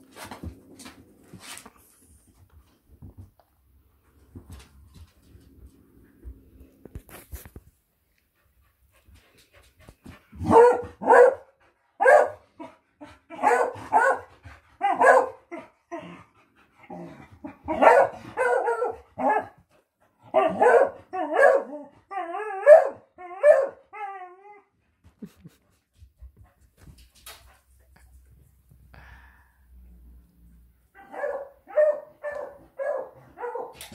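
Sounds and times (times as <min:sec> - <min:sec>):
dog barking: 0:10.4 - 0:12.4, 0:13.4 - 0:15.4, 0:17.7 - 0:19.6, 0:20.3 - 0:21.8, 0:22.6 - 0:23.8, 0:31.0 - 0:33.8.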